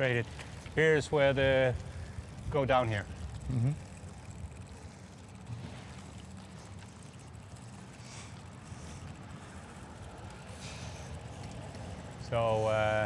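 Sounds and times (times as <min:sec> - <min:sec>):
bicycle tyres rolling on pavement: 0:00.0 - 0:13.0.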